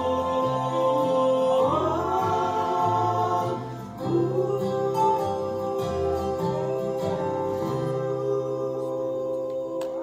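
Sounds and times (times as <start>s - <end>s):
women singing a gospel duet: 0.0s - 10.0s.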